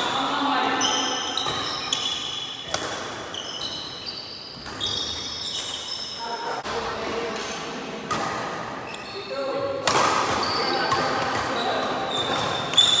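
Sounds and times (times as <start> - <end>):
racket hitting shuttlecock: 1.4 - 3.7, 9.8 - 11.6
shoes squeaking on wooden floor: 3.3 - 6.4, 11.5 - 13.0.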